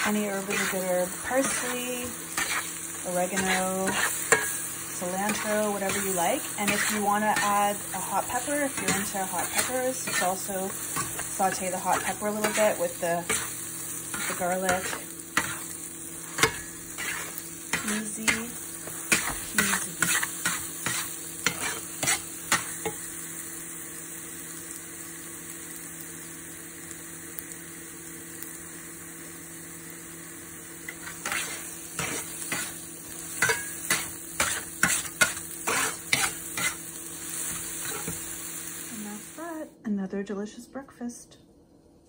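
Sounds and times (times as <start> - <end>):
metal spatula scraping a pan: 0.0 - 23.0, 30.9 - 38.5
eggs sizzling in a skillet: 0.0 - 39.8.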